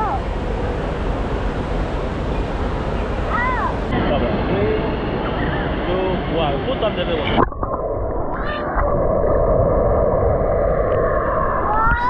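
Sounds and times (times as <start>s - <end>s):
children calling: 0.0s - 0.3s, 3.2s - 3.9s
water noise: 0.0s - 12.0s.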